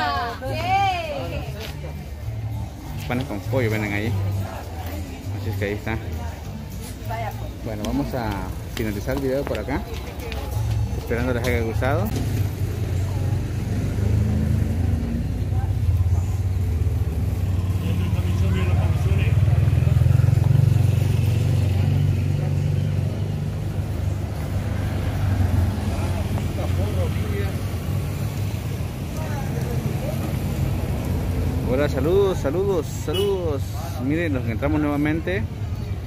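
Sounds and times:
faint voices of passers-by: 0.0 - 36.0
vehicle engines rumbling: 0.0 - 36.0.

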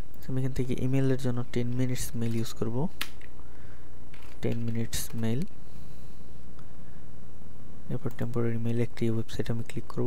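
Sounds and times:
man speaking: 0.2 - 2.9, 4.4 - 5.5, 7.9 - 10.0.

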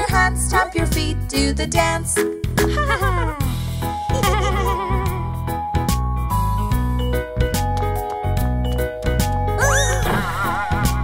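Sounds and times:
children's song backing music: 0.0 - 5.4
cartoon wail swooping in pitch: 9.6 - 10.8.

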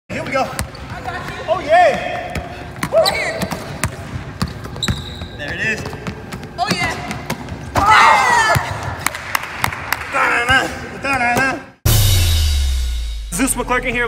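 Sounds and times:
basketballs bouncing on hardwood: 0.2 - 8.8.

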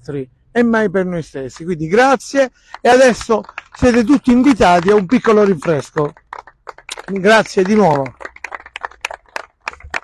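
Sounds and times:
scattered applause: 2.7 - 10.0.

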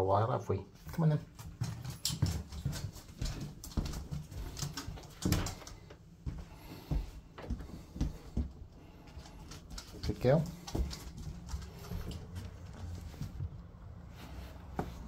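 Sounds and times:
person's footsteps: 0.8 - 15.0
dog claws clicking on floor: 1.3 - 6.0, 7.7 - 13.4.

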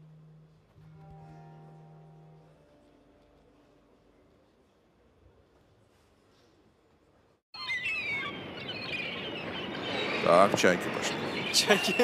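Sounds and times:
recorded seagull cries: 7.6 - 10.2.

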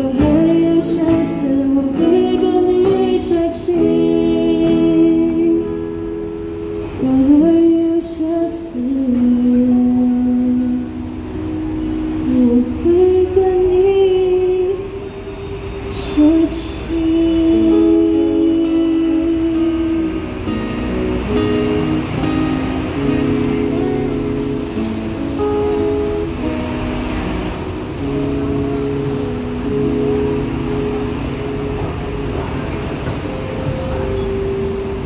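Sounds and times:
acoustic guitars playing: 0.0 - 35.0.

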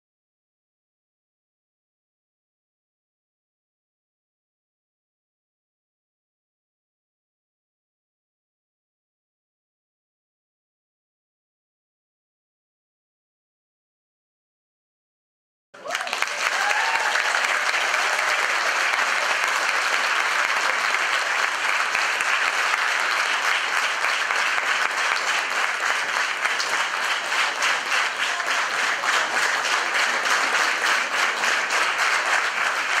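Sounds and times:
large audience applauding: 15.8 - 33.0.

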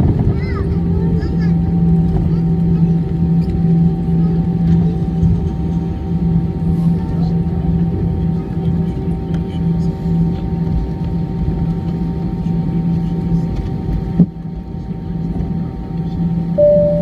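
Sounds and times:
jet engines rumbling: 0.0 - 17.0
wavering humming tone: 16.6 - 17.0.

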